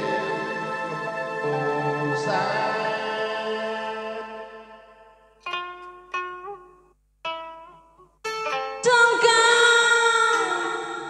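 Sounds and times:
instrumental held notes: 0.0 - 11.0.

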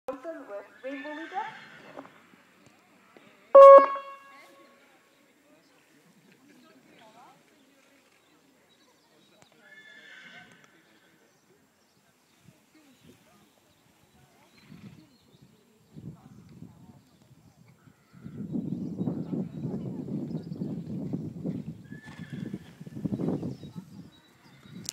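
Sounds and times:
brief high-pitched call: 3.6 - 4.6.

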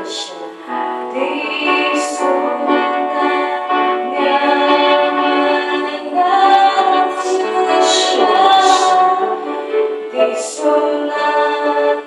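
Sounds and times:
women singing a slow worship song: 0.0 - 12.0.

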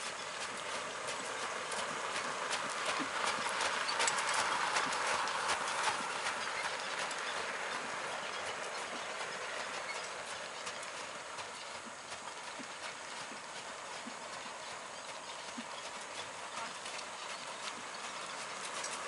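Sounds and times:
horse hooves on gravel: 0.0 - 19.0.

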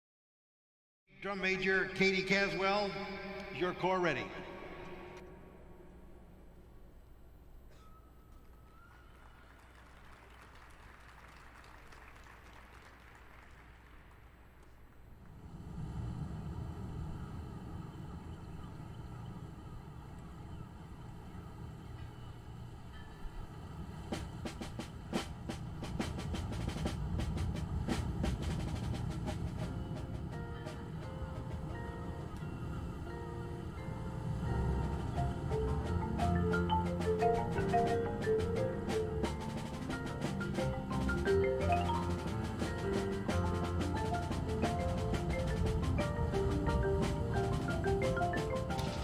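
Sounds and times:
mallet percussion notes: 29.5 - 49.0
low rumbling brass swell: 31.0 - 37.0.

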